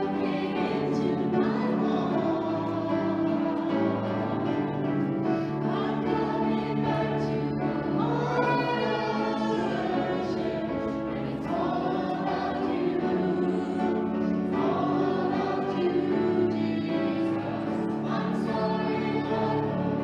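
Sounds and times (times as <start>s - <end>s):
group singing in harmony: 0.0s - 20.0s
piano accompaniment: 0.0s - 20.0s.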